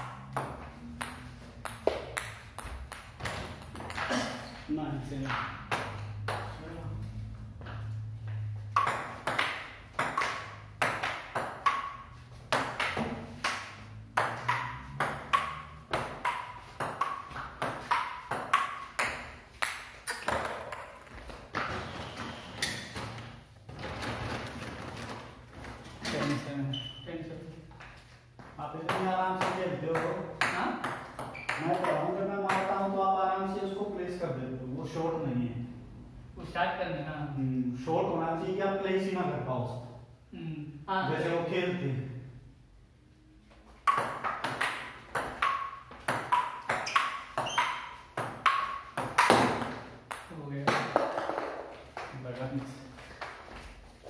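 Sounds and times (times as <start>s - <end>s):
table tennis ball hits: 0.0s - 4.1s, 5.2s - 6.6s, 8.6s - 21.9s, 28.8s - 32.8s, 43.8s - 52.1s.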